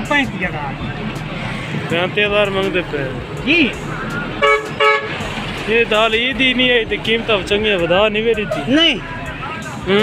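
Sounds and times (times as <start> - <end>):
vehicle horn toots: 4.4 - 5.2.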